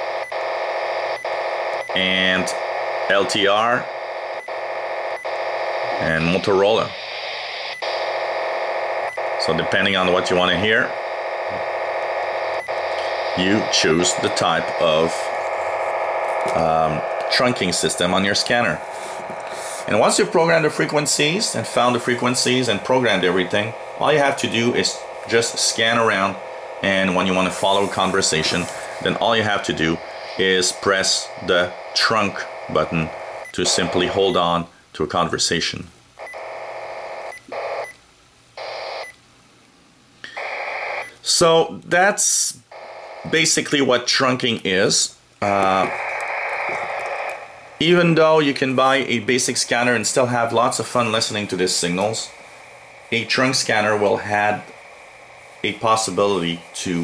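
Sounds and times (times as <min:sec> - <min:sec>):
radio scanner buzzing: 0:00.0 - 0:34.6, 0:36.2 - 0:38.0, 0:38.6 - 0:39.2, 0:40.2 - 0:57.0.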